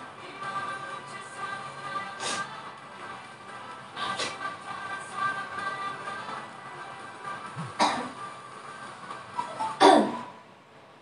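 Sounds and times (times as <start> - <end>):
faint dance music: 0.0 - 11.0
person coughing or laughing: 7.6 - 8.2, 9.8 - 10.3.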